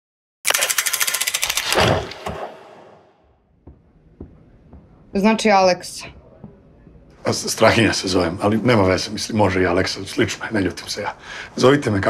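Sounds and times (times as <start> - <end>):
fast run of sharp clicks: 0.5 - 3.0.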